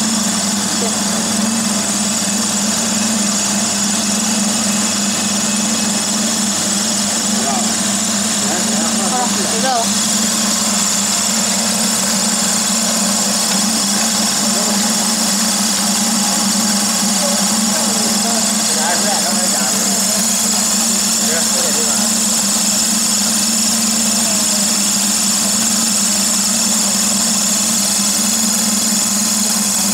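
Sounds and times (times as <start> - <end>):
pellet extruder machine running: 0.0 - 29.9.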